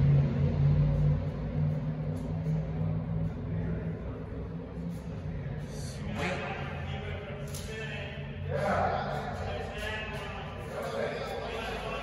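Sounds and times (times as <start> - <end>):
low rumble of machinery: 0.0 - 12.0
men talking and calling out: 3.2 - 12.0.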